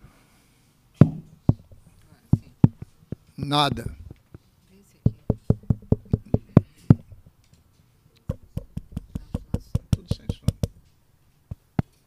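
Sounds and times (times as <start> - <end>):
finger tapping a microphone: 1.0 - 4.4, 5.1 - 7.2, 8.2 - 10.8.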